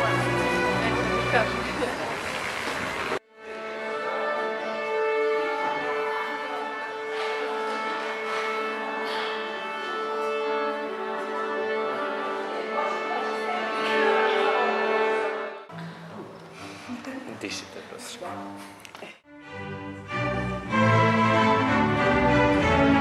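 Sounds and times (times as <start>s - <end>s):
bowed strings: 0.0s - 23.0s
music: 0.0s - 23.0s.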